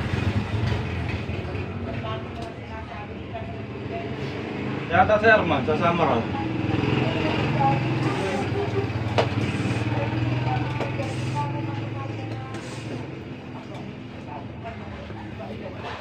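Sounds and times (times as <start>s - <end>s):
hand pump air hiss: 9.3s - 10.0s, 12.5s - 13.2s.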